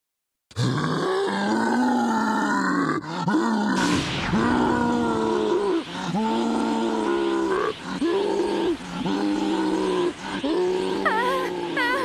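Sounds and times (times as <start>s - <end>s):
deep processed monster roar: 0.5s - 12.0s.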